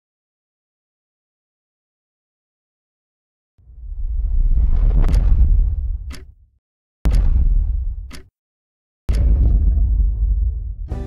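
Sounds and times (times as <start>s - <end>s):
deep rumble: 3.6s - 6.4s, 7.1s - 8.1s, 9.1s - 11.0s.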